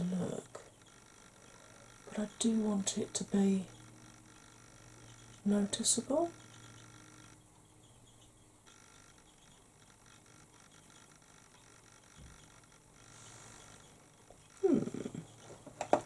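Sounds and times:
person humming hmm: 0:14.6 - 0:15.4.

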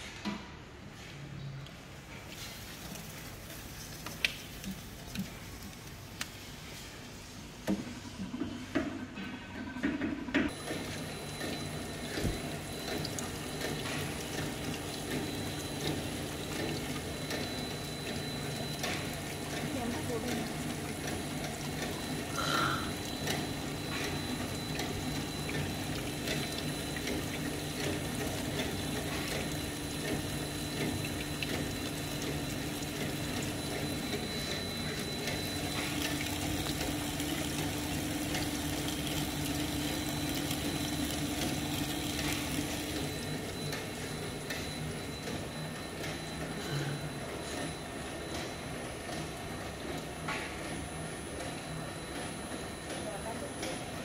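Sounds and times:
machine motor hum: 0:08.2 - 0:48.3
water pouring into steel tank: 0:10.8 - 0:44.0.

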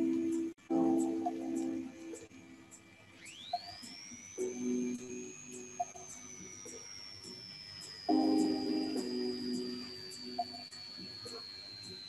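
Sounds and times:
soft high timer ticks: 0:00.0 - 0:12.0
thin whistle-like tone: 0:00.0 - 0:12.0.

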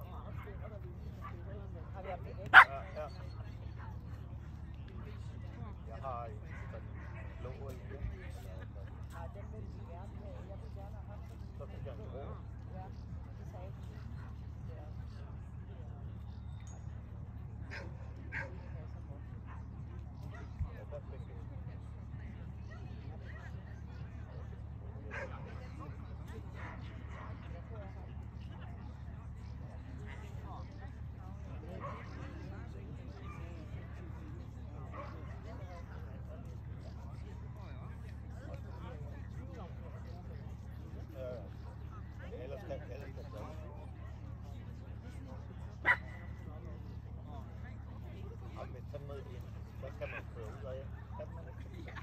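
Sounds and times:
dog barking: 0:02.5 - 0:02.8, 0:45.8 - 0:46.2.

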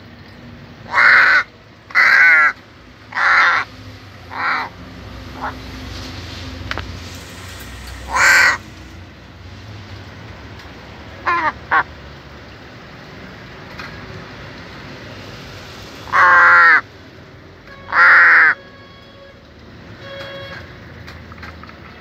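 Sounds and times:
crow cawing: 0:00.9 - 0:03.7, 0:04.3 - 0:04.7, 0:08.0 - 0:08.6, 0:16.1 - 0:16.8, 0:17.9 - 0:18.6.

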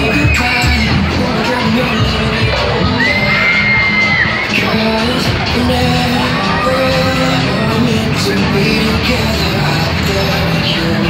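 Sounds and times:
crowd shouting and whooping: 0:00.0 - 0:09.5
fairground ride music with singing: 0:00.0 - 0:11.0.

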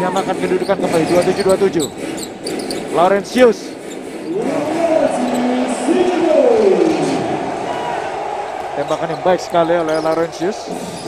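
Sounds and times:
indoor arena background noise: 0:00.0 - 0:11.0.

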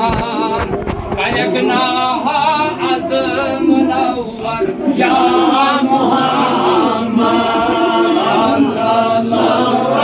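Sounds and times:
voices chanting a hymn: 0:00.0 - 0:10.0.

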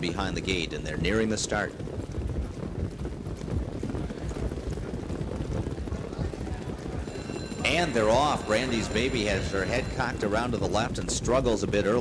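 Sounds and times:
hooves clattering on track: 0:00.0 - 0:12.0.

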